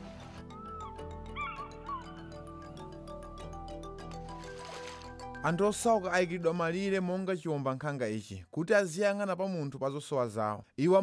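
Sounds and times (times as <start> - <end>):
fish eagle yelping calls: 0.5 - 2.5.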